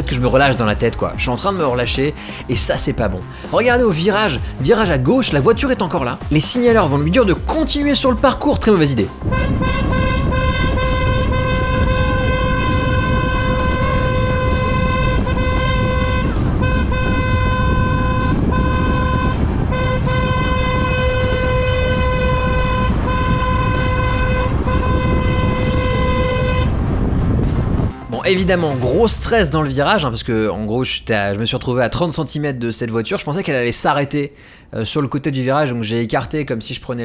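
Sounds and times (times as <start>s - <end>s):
engine and wind rumble: 0.0s - 33.6s
car horn blaring: 9.0s - 29.0s.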